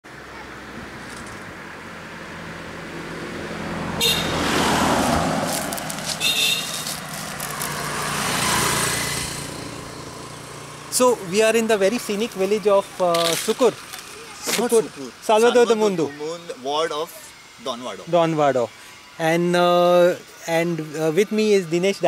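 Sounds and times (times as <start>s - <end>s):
motor scooter passing: 0.1s - 22.0s
car driving past: 0.6s - 10.9s.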